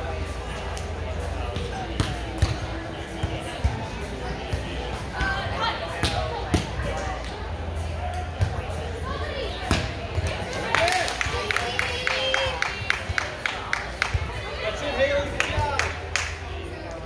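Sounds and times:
background chatter: 0:00.0 - 0:17.0.

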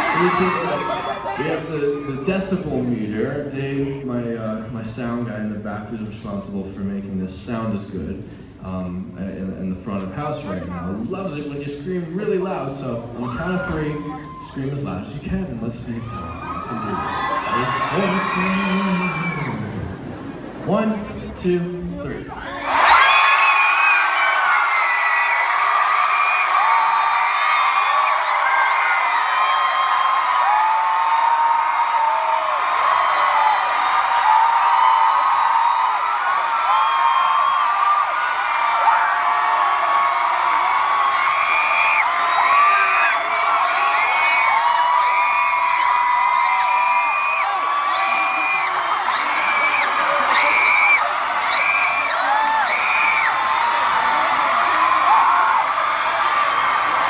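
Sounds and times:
crowd screaming: 0:00.0 - 0:02.7, 0:13.2 - 0:57.0.

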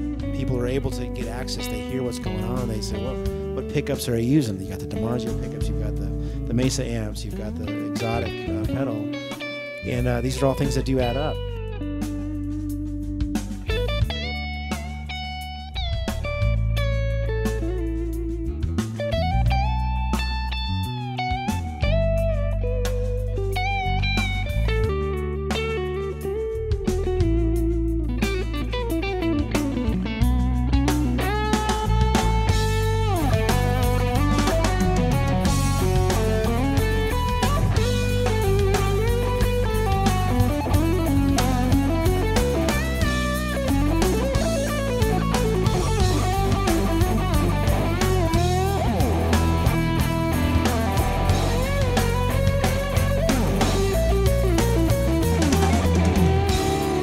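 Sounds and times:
lead electric guitar melody: 0:00.0 - 0:57.0
low backing notes: 0:00.0 - 0:57.0.

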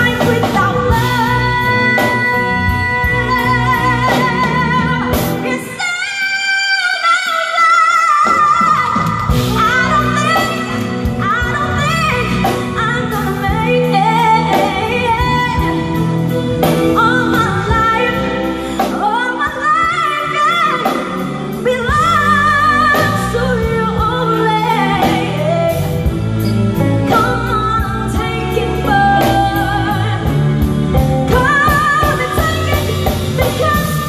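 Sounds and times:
electric bass guitar: 0:00.0 - 0:05.8, 0:08.8 - 0:34.0
drum kit: 0:00.0 - 0:34.0
woman singing soul ballad: 0:00.0 - 0:34.0.

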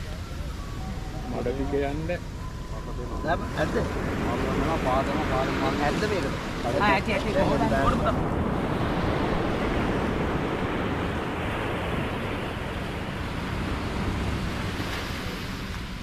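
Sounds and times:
surf rushing: 0:00.0 - 0:16.0
wind: 0:00.0 - 0:16.0.

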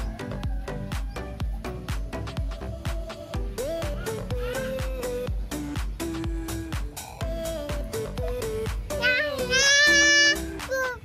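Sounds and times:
background music: 0:00.0 - 0:11.0
child singing high note: 0:08.9 - 0:11.0.

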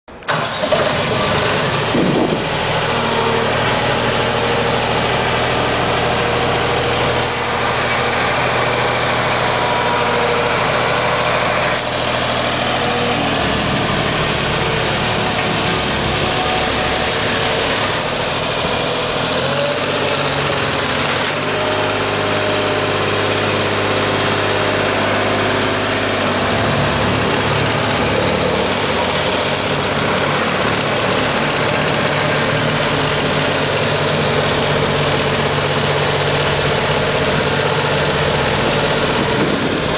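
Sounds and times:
diesel engine running: 0:00.1 - 0:39.9.

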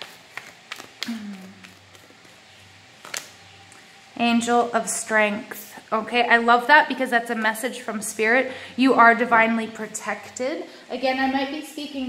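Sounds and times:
cards being shuffled: 0:00.0 - 0:03.4
woman humming: 0:01.0 - 0:01.8.

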